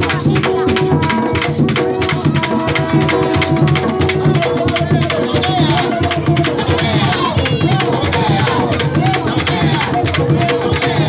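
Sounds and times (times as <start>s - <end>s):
hand drum slapped: 0.0s - 11.0s
long drum beaten with sticks: 0.0s - 11.0s
voices singing: 0.0s - 11.0s.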